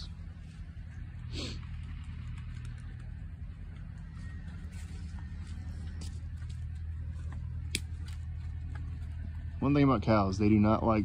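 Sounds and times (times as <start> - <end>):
cow hooves clicking: 0.0 - 11.0
low machine drone: 0.0 - 11.0.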